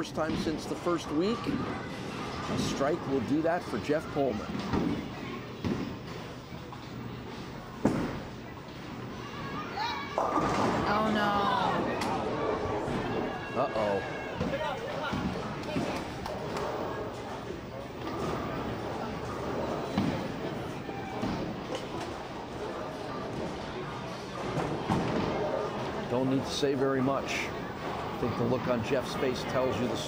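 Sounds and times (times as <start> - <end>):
voices reacting: 9.7 - 15.2
bowling ball hitting pins: 10.2 - 11.2.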